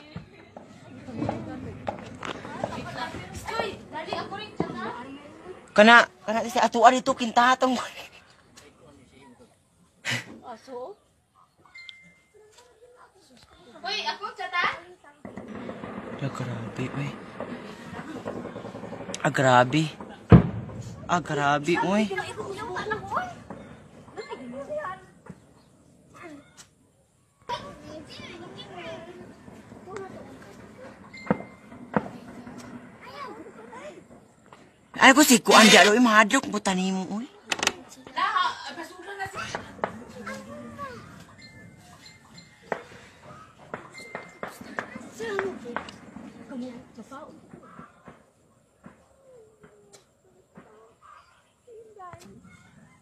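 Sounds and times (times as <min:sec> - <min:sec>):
people talking in background: 0:00.0 - 0:53.0
distant gunfire: 0:15.2 - 0:24.4, 0:28.5 - 0:33.3.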